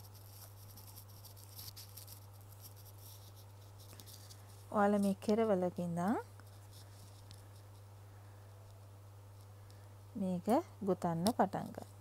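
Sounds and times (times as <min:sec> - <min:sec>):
faint rustling of yarn: 0:00.0 - 0:12.0
steady low hum: 0:00.0 - 0:12.0.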